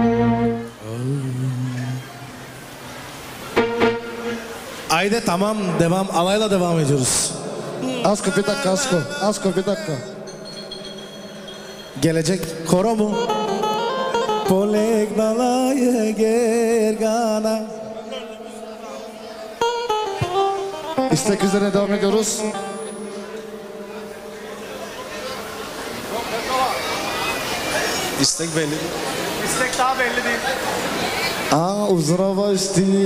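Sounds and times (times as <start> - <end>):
live band music: 0.0 - 0.9, 3.5 - 4.9, 7.6 - 15.3, 19.5 - 28.2
short pitched instrument notes: 3.5 - 4.8, 19.1 - 25.9
guest chatter: 6.9 - 12.9, 17.7 - 31.7.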